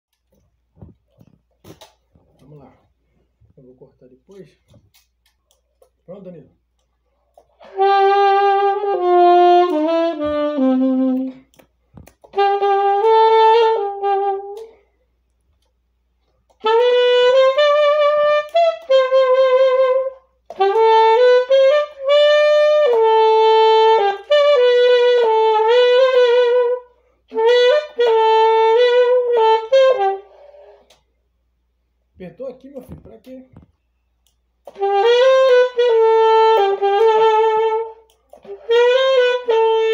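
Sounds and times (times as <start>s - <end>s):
saxophone playing slow melody: 7.5s - 11.6s, 12.2s - 14.9s, 16.5s - 31.0s, 34.6s - 39.9s.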